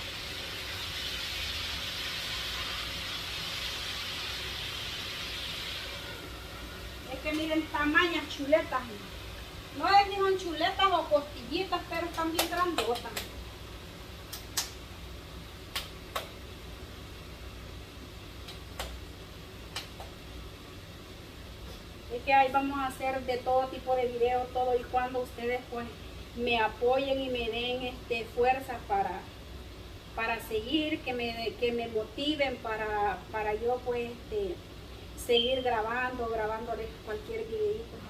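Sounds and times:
meat sizzling in a frying pan: 0.0s - 11.1s
low steady hum: 0.0s - 38.0s
hands slapping tortilla dough: 14.3s - 14.8s.

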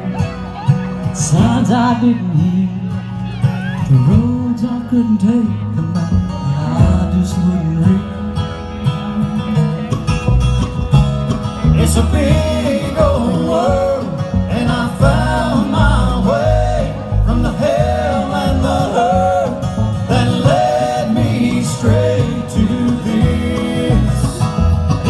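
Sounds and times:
bluegrass band playing: 0.0s - 25.0s.

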